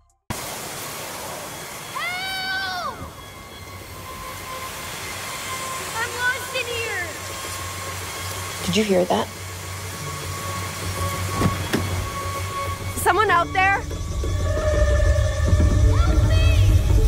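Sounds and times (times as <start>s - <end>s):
low hum: 1.0s - 17.0s.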